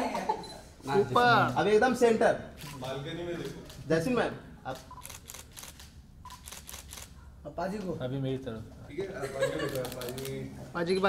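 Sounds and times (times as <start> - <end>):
camera shutters clicking: 2.6 - 3.9, 4.7 - 7.2, 9.7 - 10.4.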